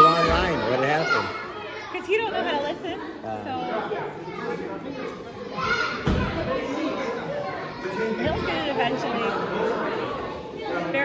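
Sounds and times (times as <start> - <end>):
children's voices echoing: 0.0 - 11.0.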